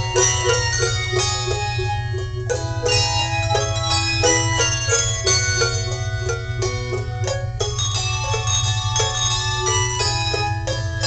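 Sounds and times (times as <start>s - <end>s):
handbell choir ringing: 2.8s - 11.0s.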